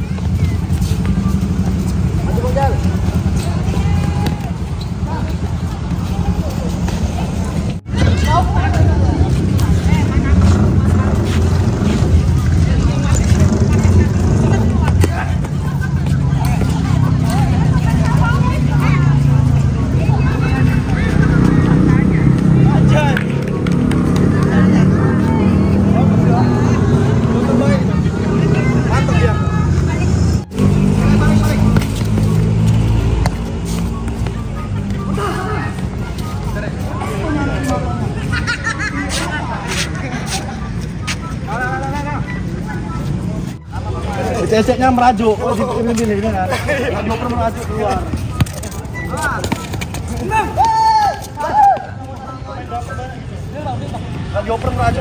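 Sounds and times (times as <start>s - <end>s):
voices calling out: 0.0s - 55.0s.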